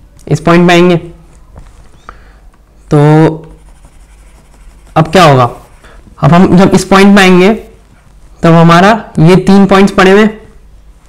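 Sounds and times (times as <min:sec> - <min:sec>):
stylus scratching on tablet: 0:03.0 - 0:08.4.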